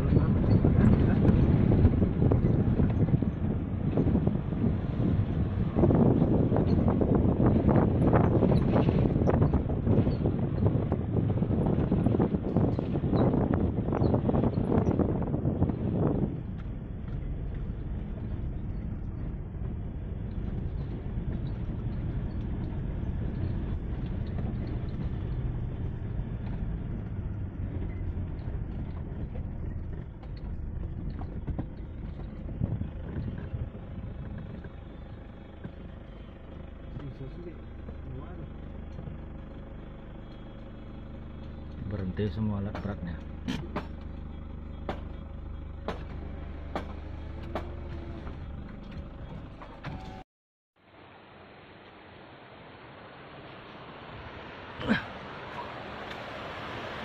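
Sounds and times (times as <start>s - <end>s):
wind buffeting microphone: 0.0s - 50.2s
car engine and road rumble: 0.0s - 57.0s.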